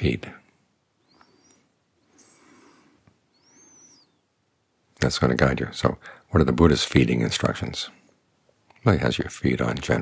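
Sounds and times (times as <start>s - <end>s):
faint soft sounds: 0.0s - 10.0s
faint high chirp: 1.0s - 4.4s.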